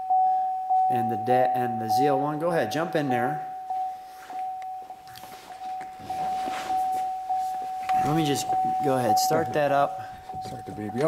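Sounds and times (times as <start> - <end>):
car warning chime: 0.0 - 11.0
clicks and rustling: 10.1 - 11.0.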